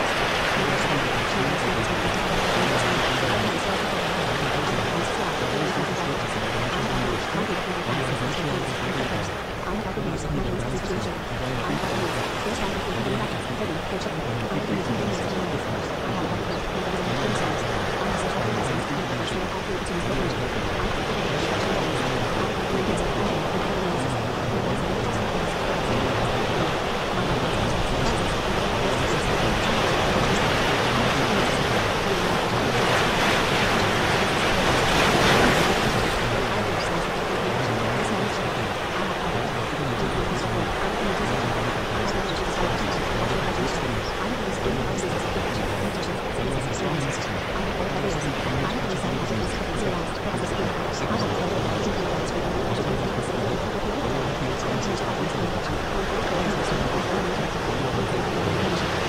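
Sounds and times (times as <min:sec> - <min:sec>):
faint sped-up speech: 0:00.0 - 0:59.0
ocean surf washing in: 0:00.0 - 0:59.0.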